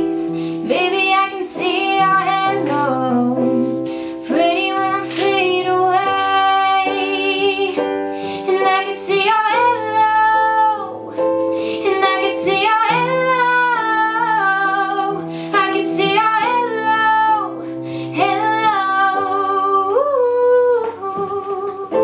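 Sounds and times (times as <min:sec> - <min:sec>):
pop song with lead vocal: 0:00.0 - 0:22.0.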